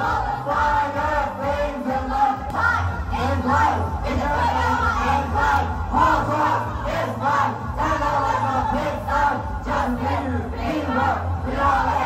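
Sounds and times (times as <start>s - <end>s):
group singing and shouting: 0.0s - 12.0s
loud backing track with heavy bass: 0.0s - 12.0s.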